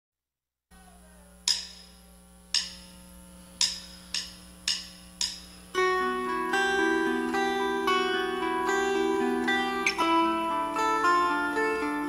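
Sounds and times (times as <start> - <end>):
low steady hum: 0.7 - 12.0
sharp ticking clicks: 1.5 - 3.0, 3.6 - 5.6.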